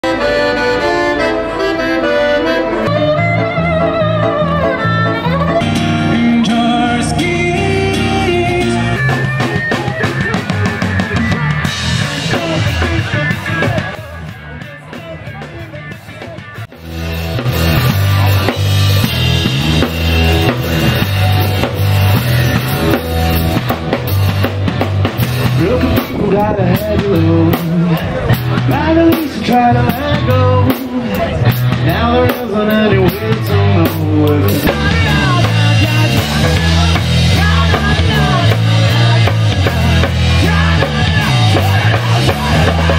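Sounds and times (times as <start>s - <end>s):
accordion playing: 0.0s - 9.9s
pitch-bending melodic line: 0.0s - 13.6s
bass line: 0.0s - 42.9s
electric guitar: 0.0s - 42.9s
drum kit: 2.4s - 42.9s.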